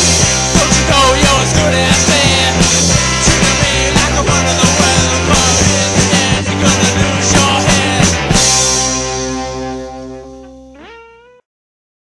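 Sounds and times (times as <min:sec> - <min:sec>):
distorted electric guitar chord: 0:00.0 - 0:11.4.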